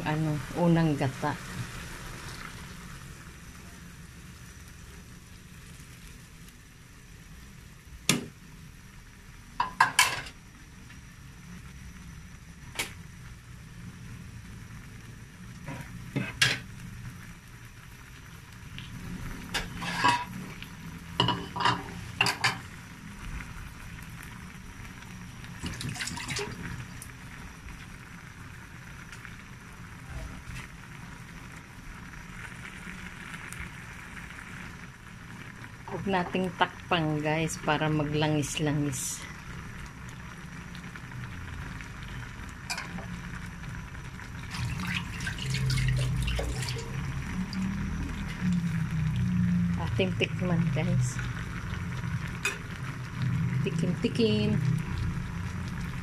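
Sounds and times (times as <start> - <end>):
steady low hiss: 0.0 - 56.0
simmering and bubbling: 16.8 - 38.6, 39.2 - 56.0
liquid pouring into pan: 18.1 - 31.4, 39.5 - 49.7.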